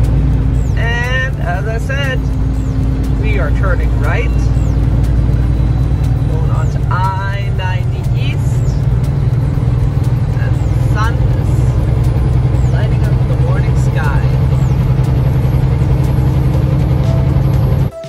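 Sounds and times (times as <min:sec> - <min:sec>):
road noise: 0:00.0 - 0:18.0
truck diesel engine drone: 0:00.0 - 0:18.0.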